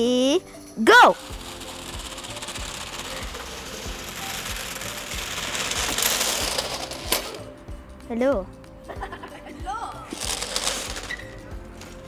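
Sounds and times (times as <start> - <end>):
robot wheels clattering over paving: 1.2 - 7.4, 10.2 - 11.4.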